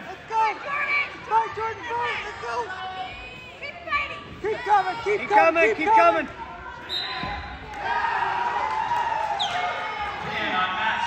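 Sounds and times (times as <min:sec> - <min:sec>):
people calling out and talking: 0:00.0 - 0:08.4.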